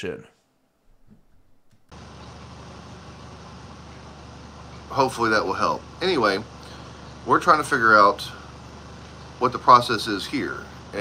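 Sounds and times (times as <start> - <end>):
air conditioning hum and hiss: 1.6 - 11.0.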